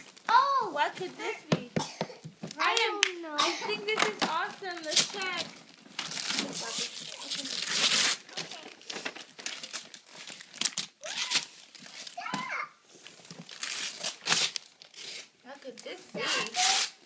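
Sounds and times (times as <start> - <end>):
wrapping paper tearing: 4.0 - 12.3, 13.0 - 17.0.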